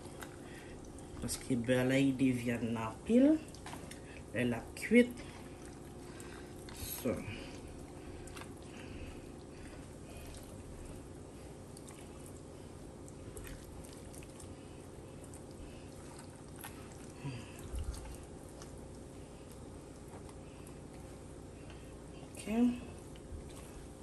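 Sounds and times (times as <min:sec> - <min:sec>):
low steady hum: 0:00.0 - 0:24.0
hands squelching on raw meat: 0:05.2 - 0:24.0.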